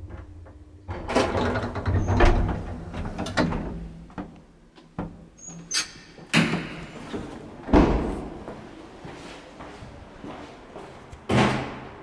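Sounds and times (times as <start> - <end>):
elevator door clicking and rattling: 0.9 - 3.8.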